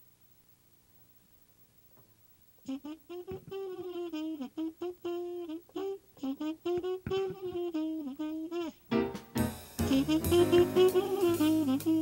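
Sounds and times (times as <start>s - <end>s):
solo jazz horn melody: 2.6s - 12.0s.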